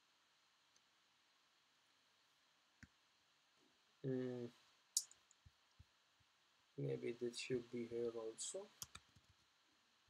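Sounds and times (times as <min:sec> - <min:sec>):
person humming hmm: 0:04.1 - 0:04.5.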